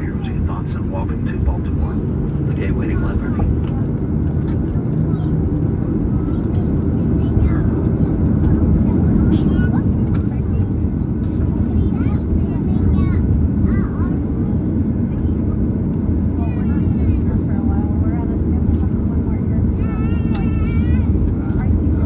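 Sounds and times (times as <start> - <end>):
faint passenger chatter: 0.0 - 22.0
low rumble of aircraft engines: 0.0 - 22.0.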